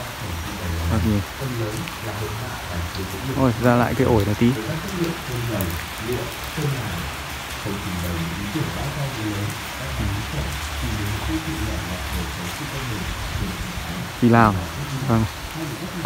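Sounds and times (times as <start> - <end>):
rain on pavement and foliage: 0.0 - 16.0.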